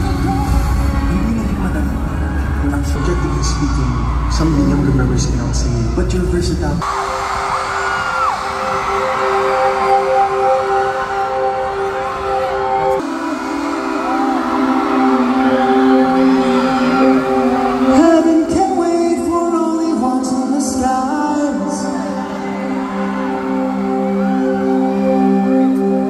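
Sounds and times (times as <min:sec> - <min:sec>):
crowd cheering and screaming: 0:00.0 - 0:06.2, 0:06.8 - 0:26.0
live concert music chords: 0:00.0 - 0:26.0.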